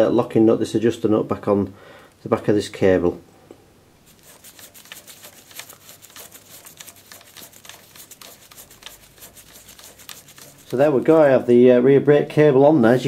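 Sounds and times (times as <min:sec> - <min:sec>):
fingers spinning nut on cable: 0:04.1 - 0:11.1.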